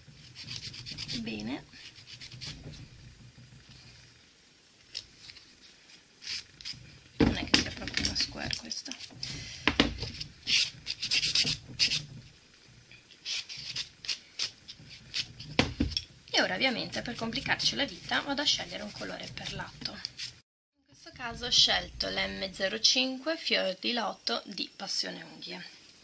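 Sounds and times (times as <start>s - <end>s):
brush sweeping over nail: 13.2s - 15.5s.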